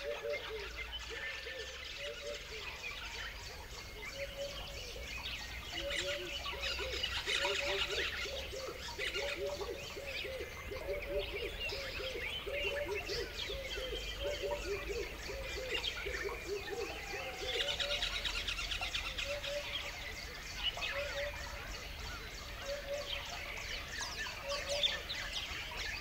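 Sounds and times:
bird chirps and trills: 0.0s - 26.0s.

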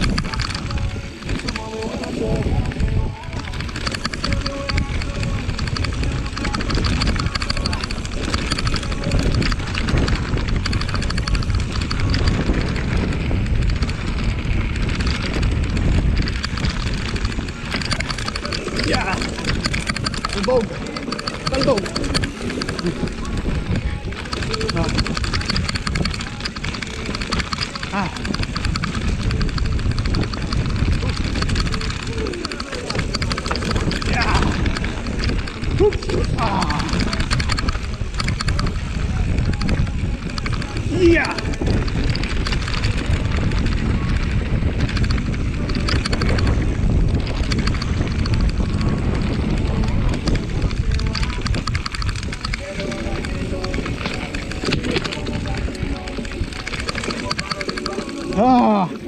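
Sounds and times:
bike rattling over bumps: 0.0s - 59.0s
tyres rolling on dirt: 0.0s - 59.0s
wind buffeting microphone: 0.0s - 59.0s.

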